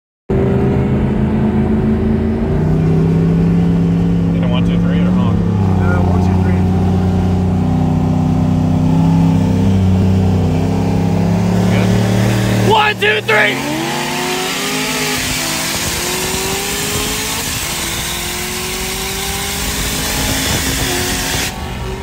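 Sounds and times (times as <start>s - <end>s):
car engine cruising: 0.3s - 22.0s.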